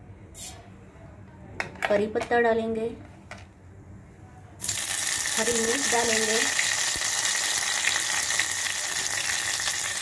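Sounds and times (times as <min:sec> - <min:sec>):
seeds hissing in hot oil: 0:04.6 - 0:10.0.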